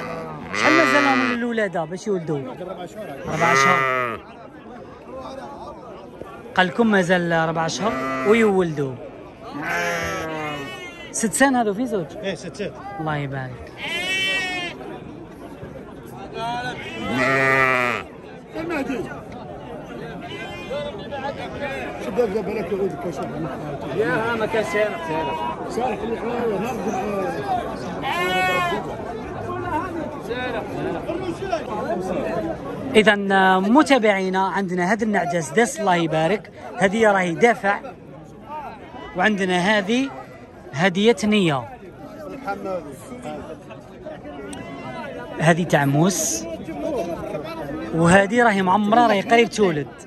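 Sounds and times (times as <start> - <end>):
sheep bleating: 0.0 - 1.4, 3.2 - 4.2, 7.8 - 8.6, 9.5 - 11.1, 13.8 - 14.8, 16.8 - 18.1
chatter of many voices: 0.0 - 50.0.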